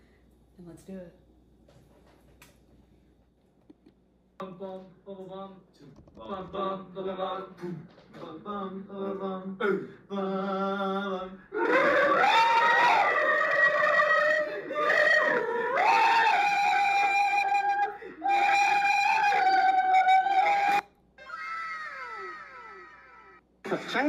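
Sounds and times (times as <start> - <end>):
high-pitched voice screaming: 17.7 - 23.4.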